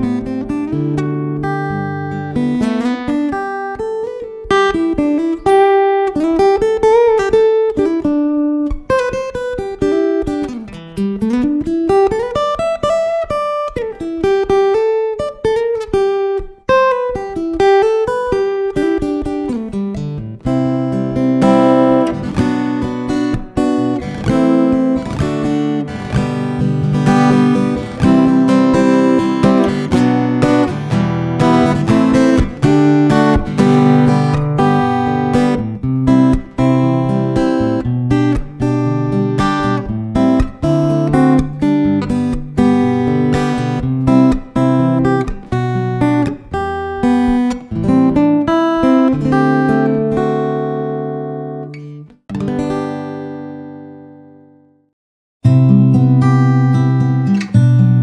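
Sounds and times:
fingerpicked acoustic guitar: 0.0 - 58.0.

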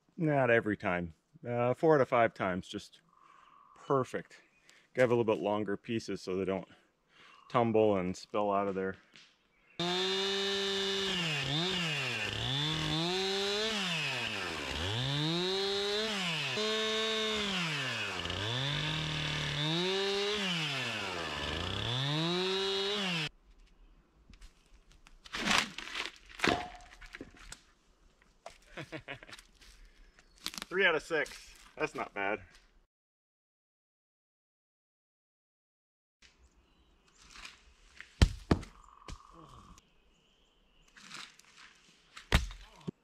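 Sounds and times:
chainsaw cutting log: 9.8 - 23.3.

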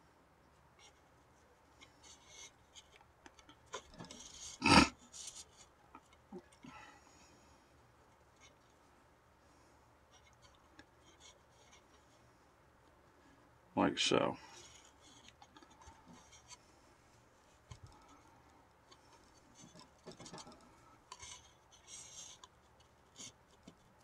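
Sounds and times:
cord rubbing and scraping: 0.8 - 6.7, 10.1 - 12.2, 14.5 - 24.0.

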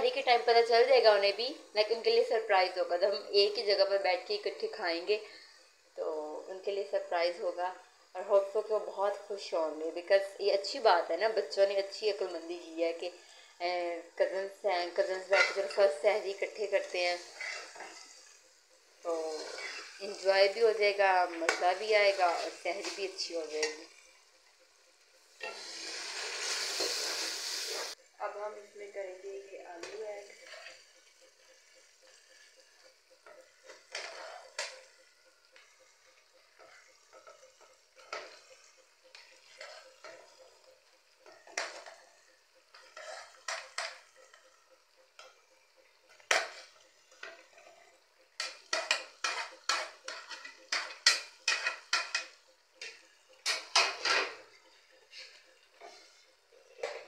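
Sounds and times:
water sizzling in hot oil: 0.0 - 57.0
metal spoon scraping a plate: 15.2 - 15.9, 17.2 - 18.4, 19.3 - 20.1, 25.4 - 27.2, 30.4 - 35.0, 36.6 - 40.6, 41.2 - 44.5, 46.2 - 54.4
spoon clinking on plate and pan: 33.2 - 35.7, 36.5 - 40.6, 41.2 - 45.4, 48.3 - 55.9.

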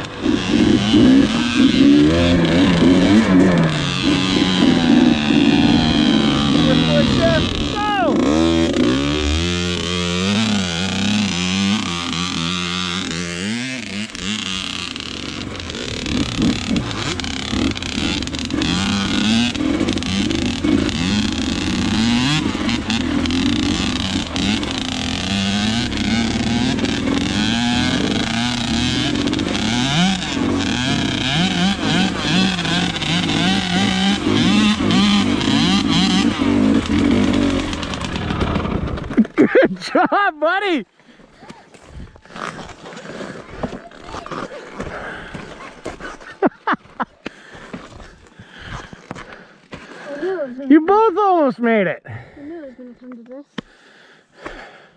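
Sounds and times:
dirt bike engine revving: 0.0 - 40.9, 42.0 - 51.5.

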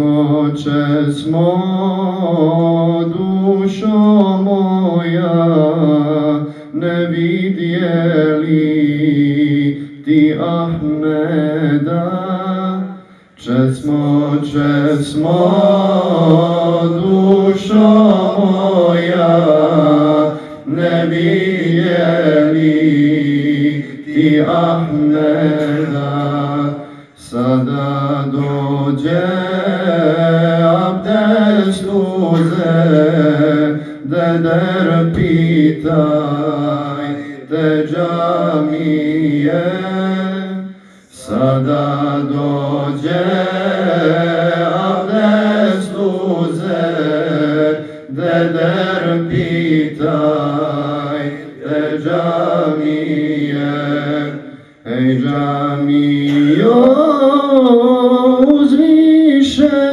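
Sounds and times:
man chanting into a microphone: 0.0 - 59.9.

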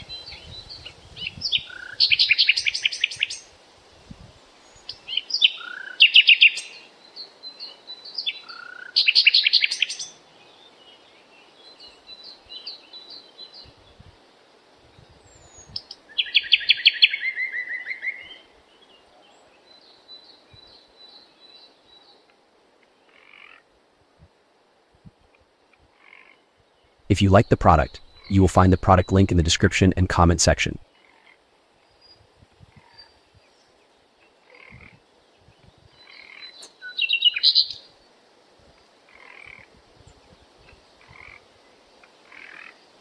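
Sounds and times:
faint background ambience: 18.4 - 32.2
birds chirping: 27.1 - 30.8
frogs calling: 41.0 - 42.8.

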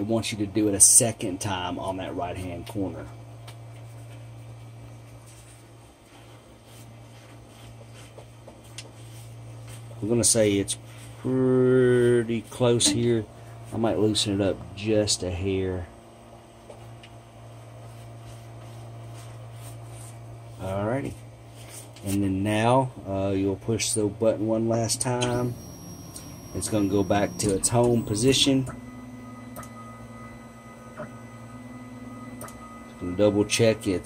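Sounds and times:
steady low hum: 0.0 - 34.0
stepper motors whining: 25.0 - 34.0.

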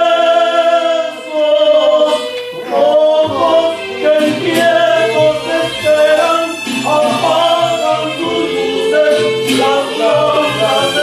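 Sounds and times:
voices singing devotional song: 0.0 - 11.0.

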